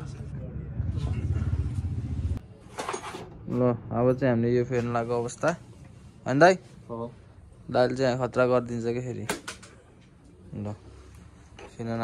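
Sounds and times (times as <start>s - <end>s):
low engine hum: 0.0s - 2.4s.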